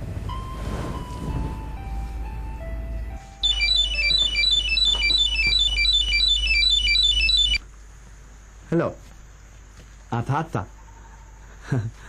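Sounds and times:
mobile phone ringtone beeps: 0:03.4 - 0:07.6.

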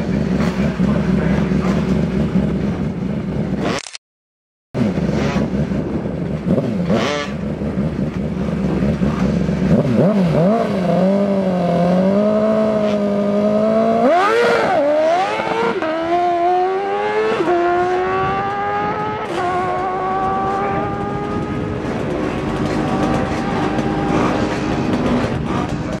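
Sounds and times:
motorcycle engine accelerating hard: 0:00.0 - 0:03.9, 0:04.8 - 0:26.0.

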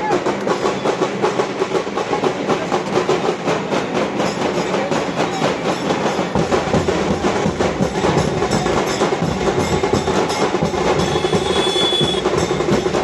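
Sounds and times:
crowd noise: 0:00.0 - 0:13.0
fast loud drumming: 0:00.0 - 0:13.0.

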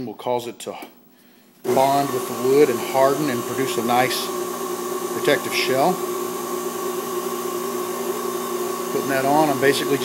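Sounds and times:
wood lathe motor humming: 0:01.7 - 0:10.0.

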